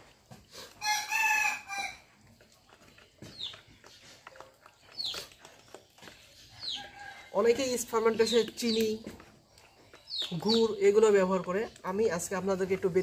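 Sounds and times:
rooster crowing: 0.8s - 2.0s.

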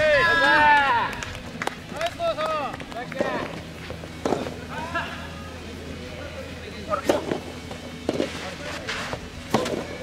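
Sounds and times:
tennis balls being hit: 4.2s - 4.7s, 7.0s - 10.0s.

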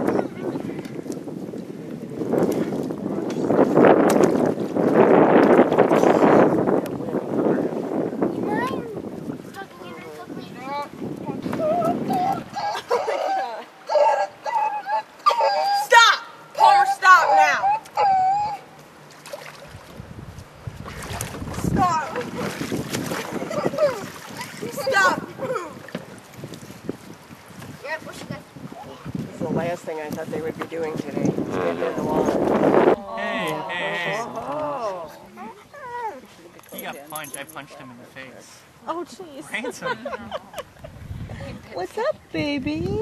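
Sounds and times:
wind buffeting microphone: 0.0s - 13.4s, 19.6s - 36.1s, 40.2s - 43.0s
people calling out: 11.4s - 18.8s, 23.3s - 25.9s, 31.5s - 36.3s.

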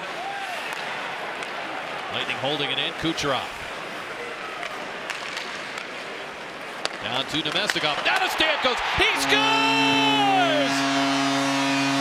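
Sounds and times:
arena crowd noise: 0.0s - 12.0s
hockey stick striking puck: 4.6s - 6.1s, 6.7s - 8.5s.

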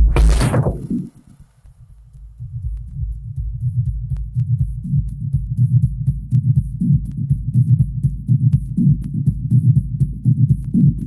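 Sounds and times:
throbbing techno bass line: 0.0s - 11.0s.

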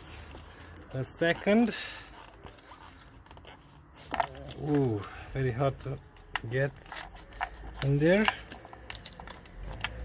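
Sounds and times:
faint rustling of wiring: 0.0s - 10.0s.

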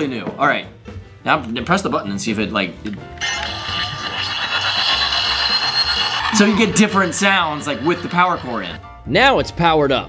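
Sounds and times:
toy robot power-up sound effect: 3.2s - 8.8s.

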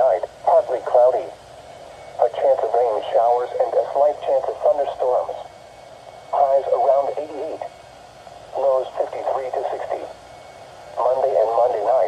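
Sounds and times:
broadcast voice through small speaker: 0.0s - 1.4s, 2.2s - 5.5s, 6.3s - 7.7s, 8.5s - 10.1s, 11.0s - 12.0s
faint radio hiss: 0.0s - 12.0s.

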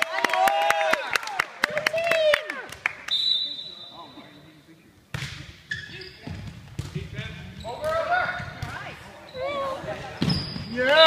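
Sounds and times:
voices echoing in a gym: 0.9s - 11.0s
referee's whistle: 3.1s - 4.2s.

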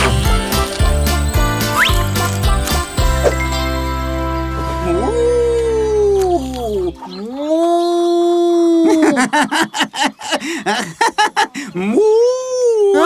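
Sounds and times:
music: 0.0s - 7.0s
short yipping calls: 1.5s - 3.6s
cartoon voice howling like a wolf: 4.9s - 6.6s.

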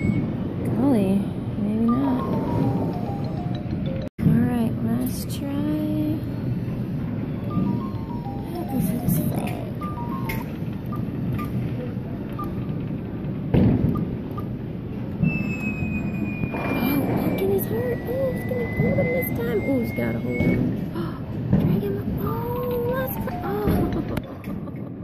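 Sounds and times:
stepped electronic beeps: 0.0s - 0.3s, 15.2s - 20.9s
long held electronic tone: 0.0s - 0.4s, 1.8s - 4.1s, 15.2s - 20.8s
game machine noise: 1.8s - 4.1s, 7.1s - 14.8s.

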